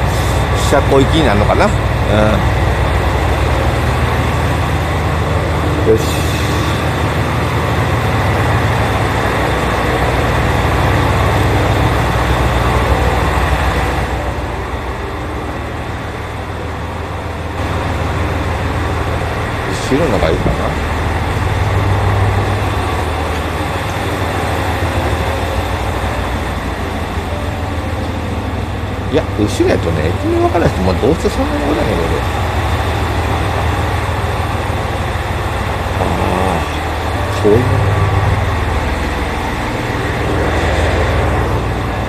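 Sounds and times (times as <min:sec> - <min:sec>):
train humming and rumbling: 0:00.0 - 0:42.0.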